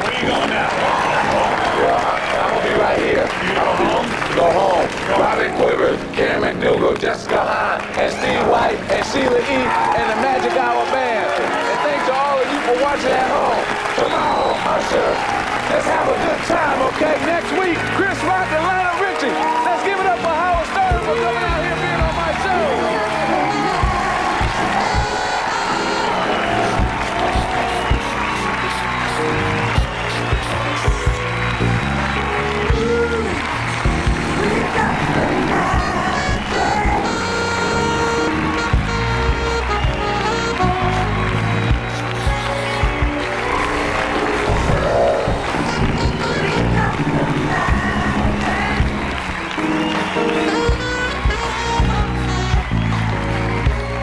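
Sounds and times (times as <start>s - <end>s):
audience cheering and clapping: 0.0s - 54.0s
band playing upbeat music: 0.0s - 54.0s.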